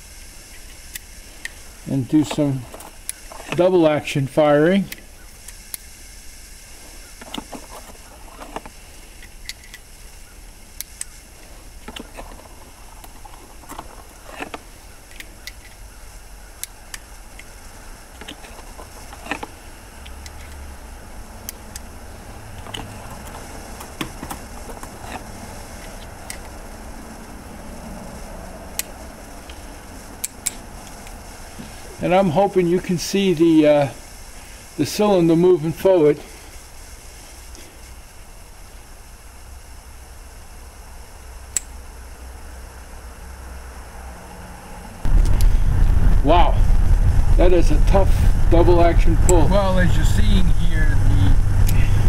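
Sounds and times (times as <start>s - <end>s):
low background noise: 0.0s - 52.0s
revolver mechanism clicks: 41.5s - 41.8s.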